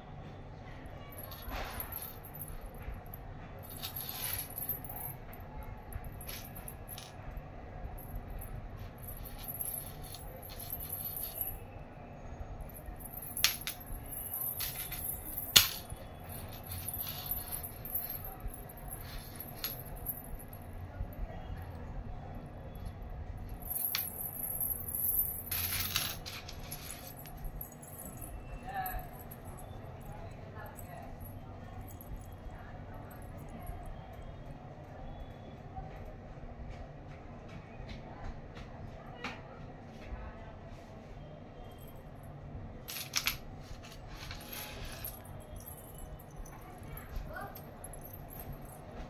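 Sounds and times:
low background noise: 0:00.0 - 0:49.0
metal anklet bells jingling: 0:01.0 - 0:11.8, 0:12.6 - 0:34.3, 0:42.9 - 0:49.0.

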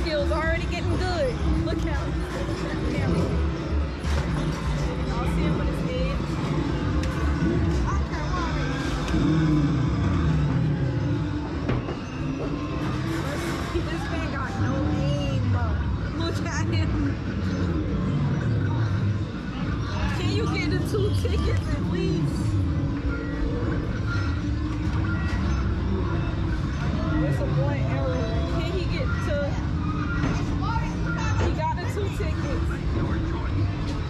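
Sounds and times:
arcade game engine noise: 0:00.0 - 0:34.0
voices: 0:00.0 - 0:34.0.

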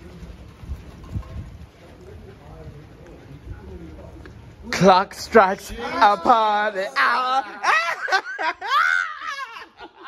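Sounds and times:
light rain falling: 0:00.0 - 0:10.0.

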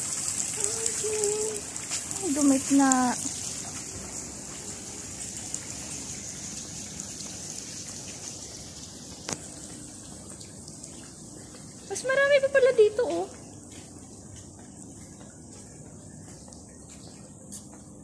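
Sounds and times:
fountain water splashing: 0:00.0 - 0:13.3.

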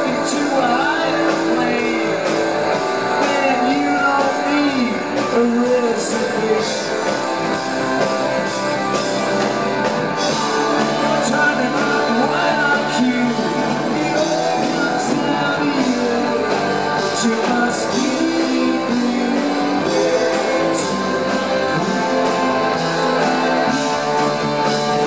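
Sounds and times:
bass guitar: 0:00.0 - 0:25.0
drum kit: 0:00.0 - 0:25.0
electric guitar: 0:00.0 - 0:25.0.

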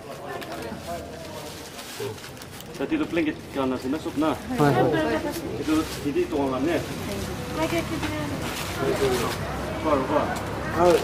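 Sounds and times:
voices murmuring: 0:00.0 - 0:11.0.

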